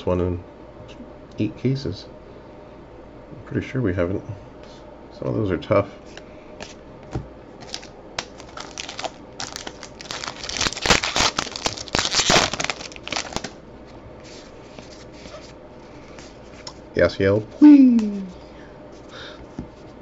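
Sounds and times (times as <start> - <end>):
wrapper tearing and crinkling: 7.6 - 13.6.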